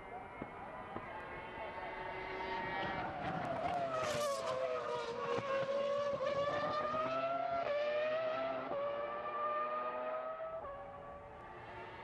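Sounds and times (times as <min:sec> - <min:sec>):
racing car engine at full throttle: 0:00.8 - 0:12.0.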